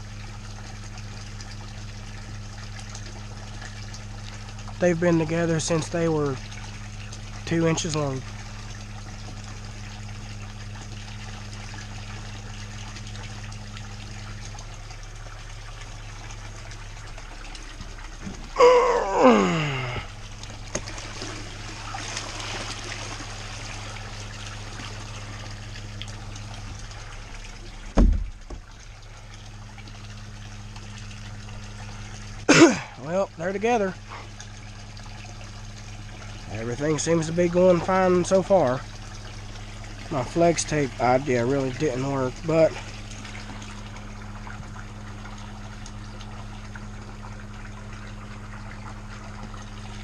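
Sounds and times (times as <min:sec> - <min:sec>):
pump humming: 0:00.0 - 0:50.0
water splashing into pond: 0:00.0 - 0:50.0
dull thump: 0:27.9 - 0:28.7.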